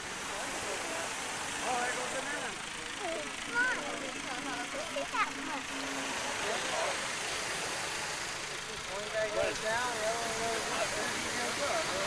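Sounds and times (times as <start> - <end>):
machine running with low hum: 0.0 - 12.0
people talking indistinctly: 0.3 - 12.0.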